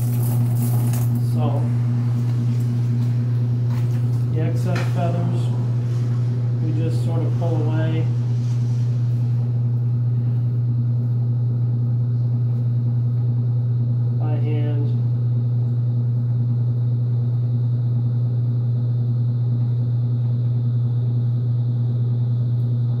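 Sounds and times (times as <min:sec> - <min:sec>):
electric motor hum: 0:00.0 - 0:23.0.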